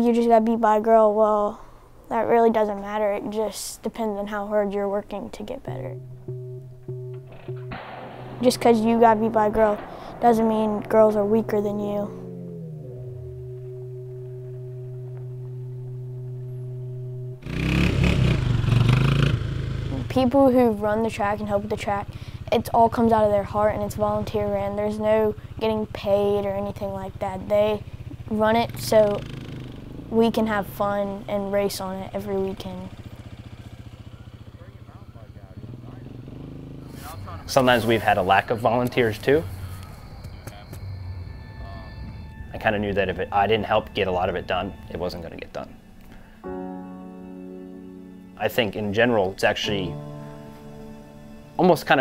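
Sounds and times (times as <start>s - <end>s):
atv engine running: 5.7s - 52.0s
musical drone: 5.7s - 52.0s.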